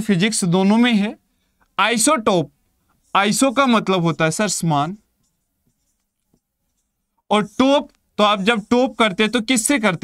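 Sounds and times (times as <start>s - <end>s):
marker writing on a board: 1.9s - 10.0s.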